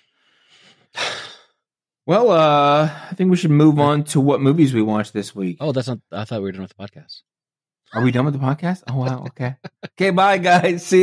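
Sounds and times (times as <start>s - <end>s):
man sighing: 1.0s - 1.5s.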